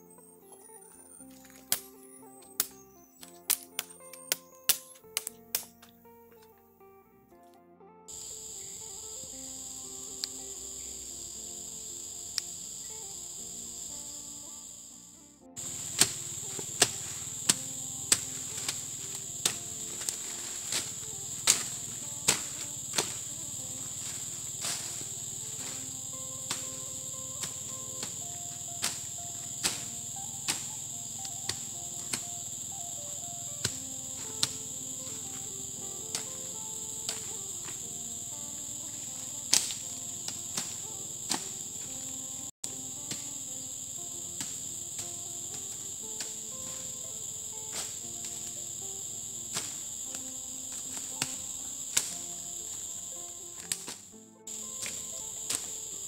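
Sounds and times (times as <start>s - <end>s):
high-pitched insect chorus: 0.0s - 6.0s, 8.1s - 56.0s
machete chopping weeds: 1.4s - 5.9s, 15.6s - 56.0s.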